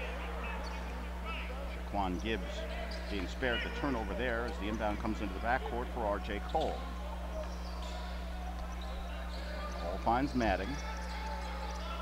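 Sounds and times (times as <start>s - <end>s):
crowd murmur: 0.0s - 12.0s.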